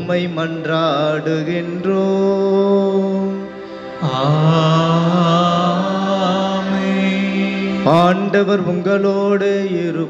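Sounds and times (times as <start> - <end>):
man chanting prayer: 0.0 - 3.4, 4.0 - 10.0.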